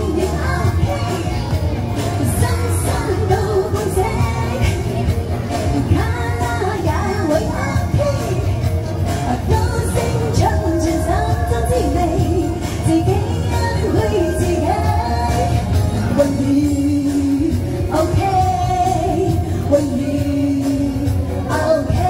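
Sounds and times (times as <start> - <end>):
karaoke backing track: 0.0 - 22.0
woman singing into microphone: 0.0 - 22.0.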